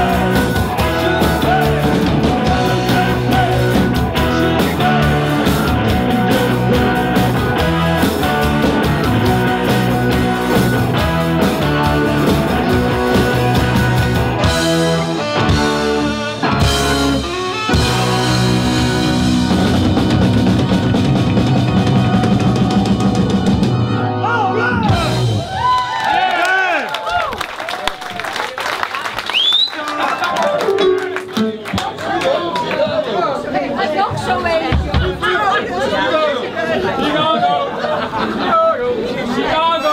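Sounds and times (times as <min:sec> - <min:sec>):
rock band playing live: 0:00.0 - 0:25.8, 0:30.4 - 0:32.1.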